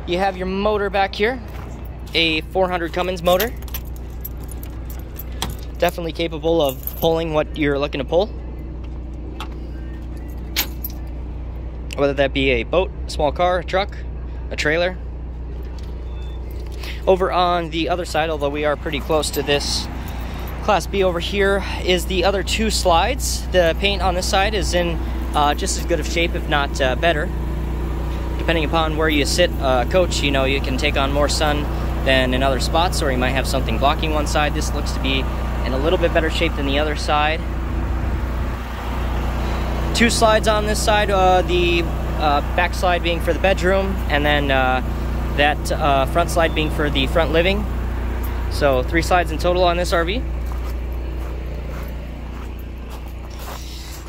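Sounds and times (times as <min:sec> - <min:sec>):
steady low hum: 0:00.0 - 0:54.0
keys jingling: 0:02.9 - 0:07.3, 0:10.1 - 0:11.2, 0:18.9 - 0:20.7.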